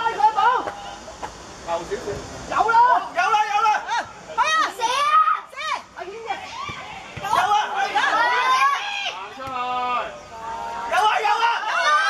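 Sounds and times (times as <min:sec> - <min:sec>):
young voices shouting: 0:02.5 - 0:12.0.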